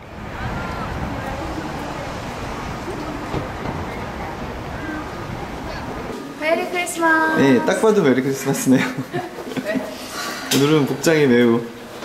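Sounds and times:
faint distant voices: 0:00.0 - 0:11.7.

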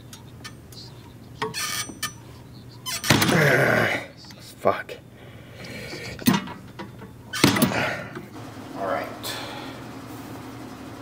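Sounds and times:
man grunting with effort: 0:03.2 - 0:04.1
breathy groan: 0:03.2 - 0:04.2, 0:07.6 - 0:08.2.

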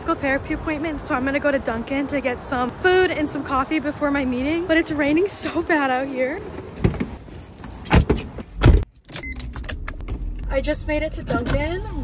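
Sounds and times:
car door slamming shut: 0:07.9 - 0:08.9.

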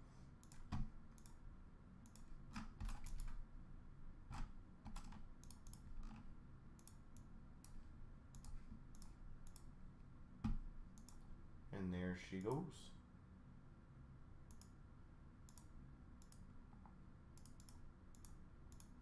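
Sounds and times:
computer mouse and keyboard clicking: 0:00.4 - 0:01.4, 0:02.0 - 0:03.4, 0:04.3 - 0:09.7, 0:10.4 - 0:11.3, 0:14.5 - 0:14.8, 0:15.5 - 0:19.0.

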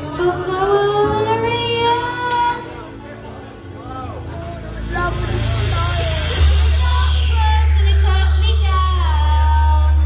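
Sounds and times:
karaoke backing track: 0:00.0 - 0:10.0
boy singing a long note: 0:04.6 - 0:10.0.

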